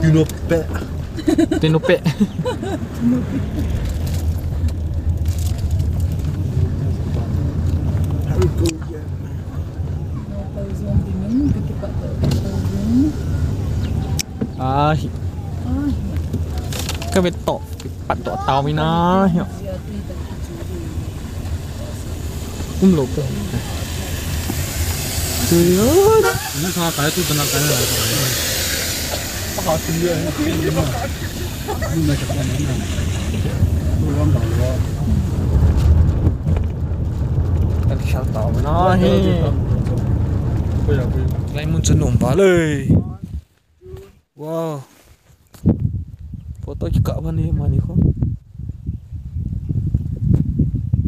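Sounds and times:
wind buffeting microphone: 0:00.0 - 0:44.1, 0:45.5 - 0:51.0
car engine and road rumble: 0:00.0 - 0:51.0.

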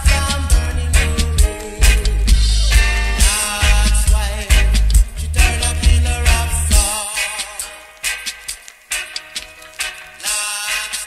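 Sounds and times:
reggae music with heavy bass: 0:00.0 - 0:11.0.

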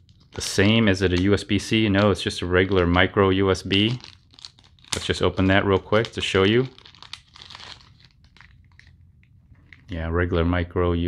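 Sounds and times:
plastic bag crinkling: 0:00.0 - 0:09.9.

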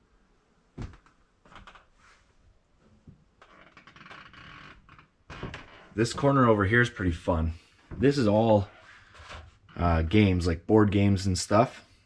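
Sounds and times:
faint rustling and scuffing: 0:00.8 - 0:03.3.

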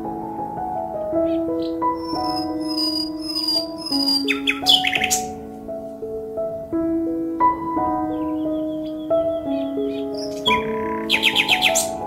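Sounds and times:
background music of sustained notes: 0:00.0 - 0:12.0
birds chirping: 0:01.2 - 0:05.5, 0:07.6 - 0:12.0.

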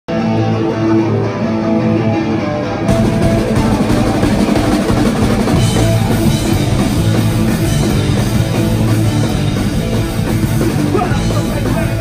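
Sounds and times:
drums: 0:00.1 - 0:12.0
electric guitar ringing chords: 0:00.1 - 0:12.0.

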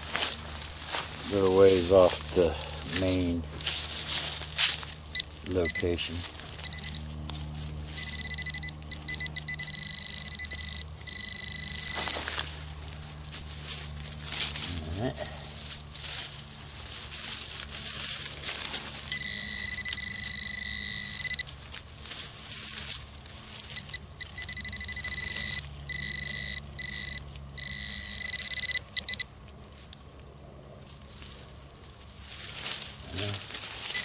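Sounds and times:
high-pitched pinpointer alert tone: 0:05.1 - 0:06.0, 0:06.6 - 0:07.1, 0:07.9 - 0:12.4, 0:19.0 - 0:21.5, 0:23.7 - 0:29.3
hand digger scraping dirt: 0:11.8 - 0:19.3.

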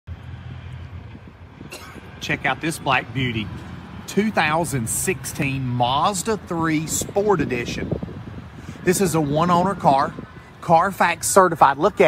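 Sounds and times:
low outdoor rumble: 0:00.1 - 0:12.0
man speaking: 0:02.2 - 0:07.9, 0:08.8 - 0:12.0.

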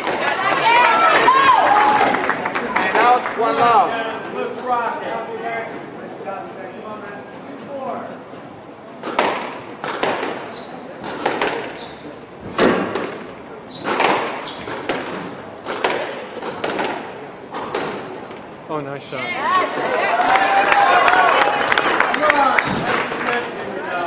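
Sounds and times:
ball smacking off court walls: 0:09.0 - 0:10.4, 0:12.5 - 0:18.1
squash ball struck by rackets: 0:09.0 - 0:11.8, 0:12.5 - 0:18.1.

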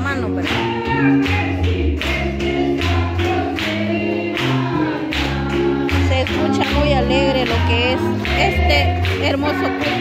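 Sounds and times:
gospel choir singing over beat: 0:00.2 - 0:10.0.

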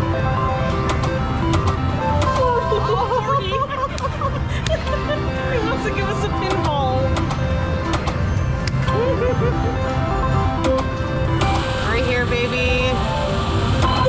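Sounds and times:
slot machine tones and jingles: 0:04.8 - 0:14.0.

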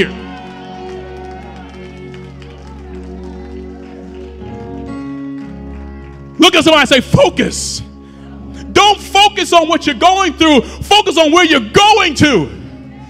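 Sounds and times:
church music held chords: 0:00.0 - 0:13.0.

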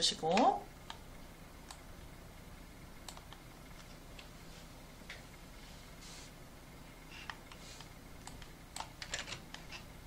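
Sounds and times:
computer keys typing: 0:08.2 - 0:09.8.

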